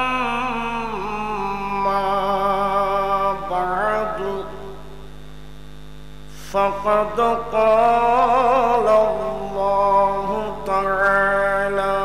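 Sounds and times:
man chanting over loudspeaker: 0.0 - 5.0, 6.4 - 12.0
electrical mains hum: 0.0 - 12.0.

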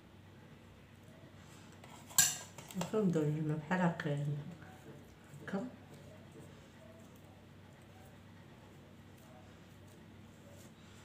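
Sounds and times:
metal spoon clinking on dish: 2.1 - 2.8.

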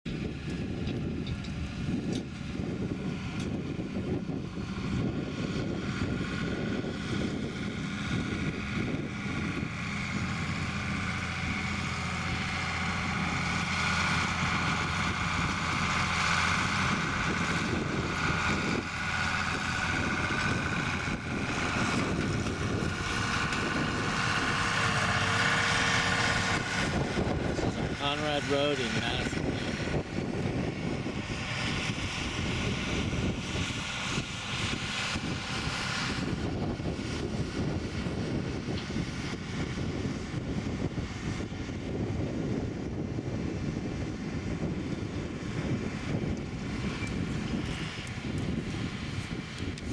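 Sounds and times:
tractor diesel engine under load: 0.0 - 49.9.

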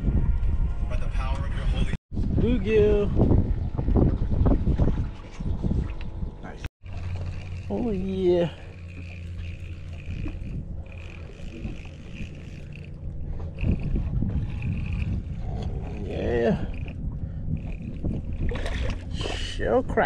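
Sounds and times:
low hum: 0.0 - 20.0
wind rumble: 0.0 - 20.0
fishing reel whining: 6.8 - 19.6.

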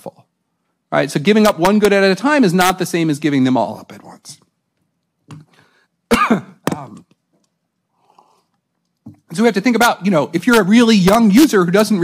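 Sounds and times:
man coughing: 6.1 - 7.0.

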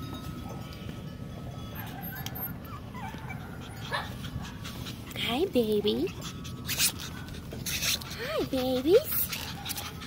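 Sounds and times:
puppies whimpering: 1.7 - 10.0
puppy yip: 1.8 - 4.2.

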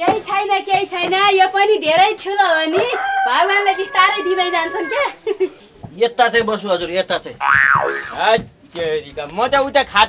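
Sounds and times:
comic boing sound effect: 7.4 - 8.2.

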